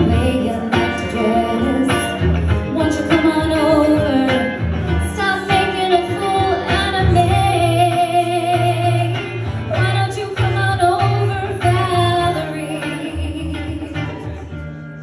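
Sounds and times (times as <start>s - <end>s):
woman singing into a microphone: 0.0s - 14.3s
electric guitar: 0.0s - 15.0s.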